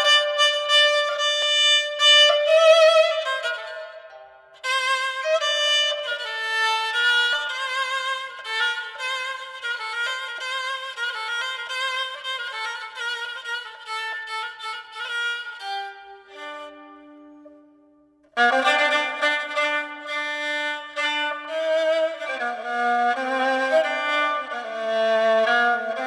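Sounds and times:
bowed spike fiddle melody: 0:00.0 - 0:26.0.

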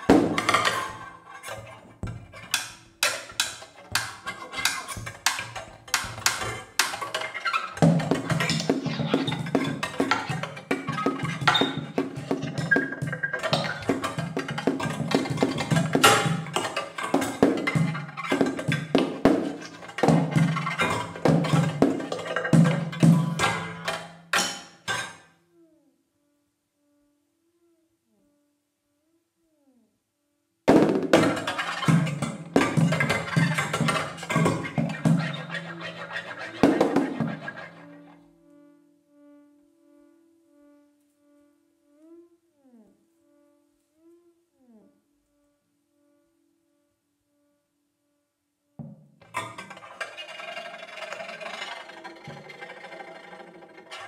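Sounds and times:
cymbals scraped with a whisk: 0:00.0 - 0:25.2, 0:31.0 - 0:38.2, 0:49.2 - 0:54.0.

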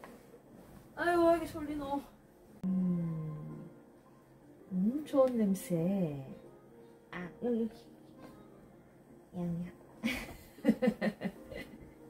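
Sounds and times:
woman laughing: 0:10.0 - 0:12.0.

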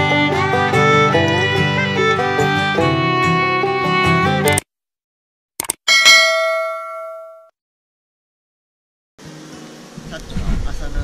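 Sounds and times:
notification bell ding: 0:05.9 - 0:07.5.

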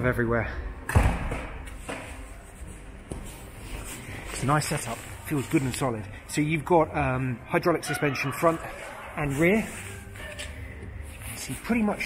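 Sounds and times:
door slamming with echo: 0:00.8 - 0:01.6.

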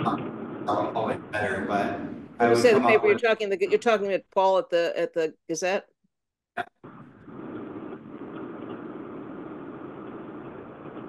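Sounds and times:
rushing noise over phone line: 0:00.0 - 0:03.4, 0:06.9 - 0:11.0.

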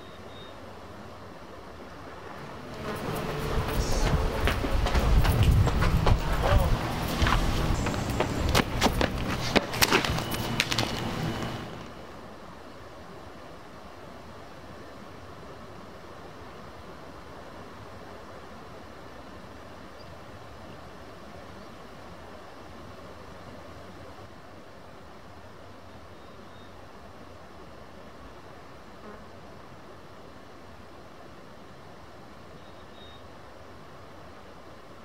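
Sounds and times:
outdoor background noise: 0:00.0 - 0:35.0.

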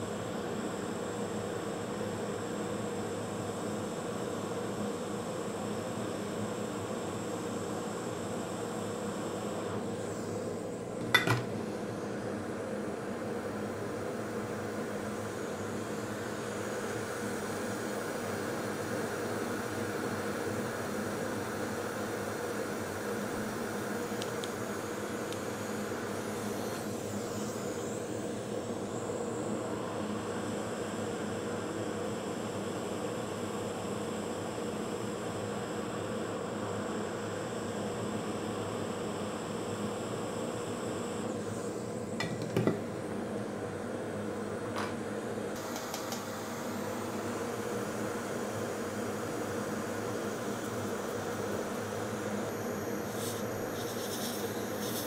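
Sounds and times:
hot air blower hum and hiss: 0:00.0 - 0:55.0.

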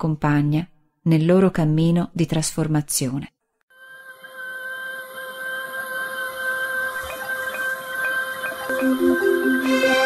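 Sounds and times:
electronic drone of held tones: 0:03.7 - 0:10.0.

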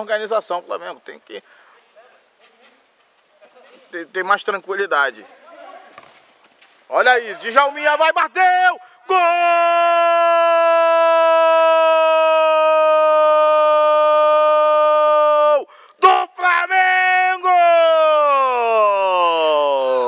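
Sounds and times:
man shouting goal: 0:07.1 - 0:20.0.

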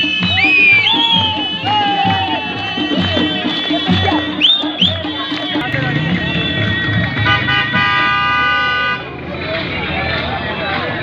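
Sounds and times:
car horn: 0:02.8 - 0:09.1.

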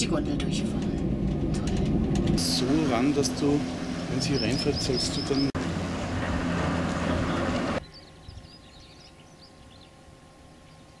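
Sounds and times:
gondola lift machinery rumbling: 0:00.0 - 0:10.7
small birds chirping: 0:03.4 - 0:05.6, 0:06.9 - 0:11.0.

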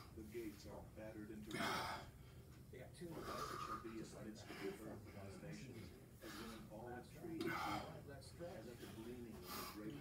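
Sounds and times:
faint background talk: 0:00.0 - 0:10.0.

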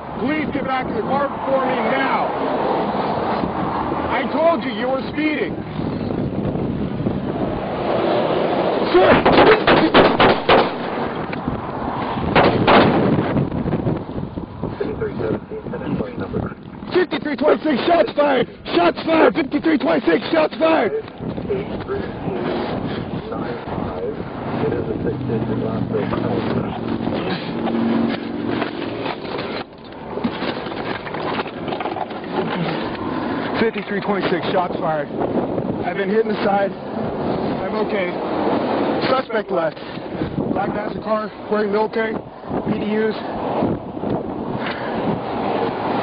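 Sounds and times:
wind noise on microphone: 0:00.0 - 0:17.0, 0:17.6 - 0:46.0
gunshots: 0:09.0 - 0:11.1, 0:12.3 - 0:13.2.

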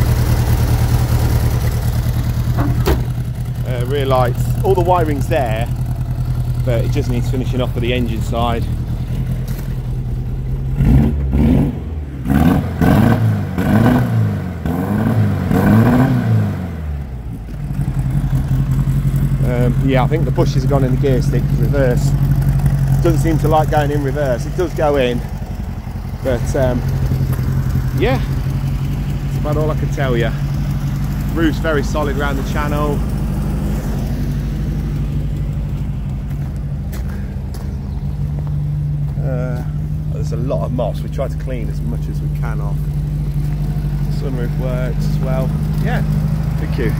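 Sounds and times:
engine revving and idling: 0:00.0 - 0:46.9.

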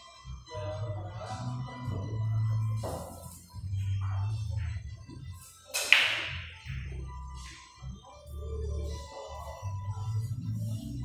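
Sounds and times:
pool balls cracking: 0:05.7 - 0:06.9.

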